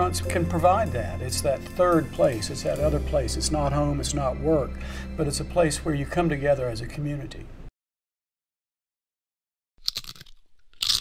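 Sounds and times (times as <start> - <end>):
crunchy bites: 9.8 - 11.0.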